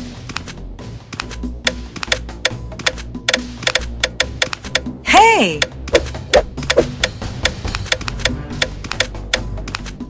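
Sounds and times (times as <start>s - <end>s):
quick sharp clicks: 0.3s - 4.9s, 5.6s - 10.0s.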